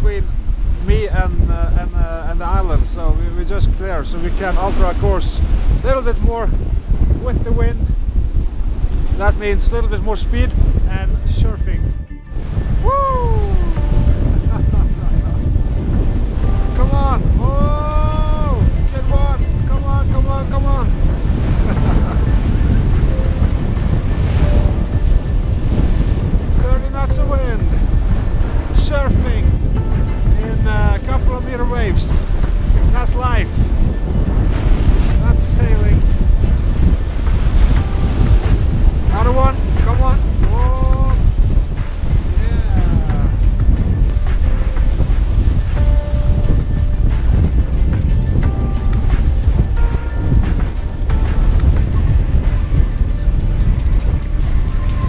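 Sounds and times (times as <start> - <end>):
waves rushing along hull: 0.0 - 55.0
wind buffeting microphone: 0.0 - 55.0
pitched voice or melody: 12.8 - 14.0.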